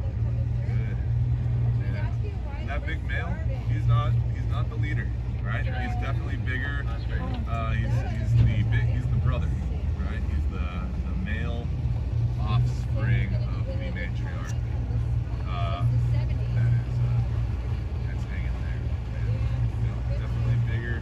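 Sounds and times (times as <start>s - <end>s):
boat engine idling: 0.0s - 21.0s
people talking indistinctly: 0.0s - 21.0s.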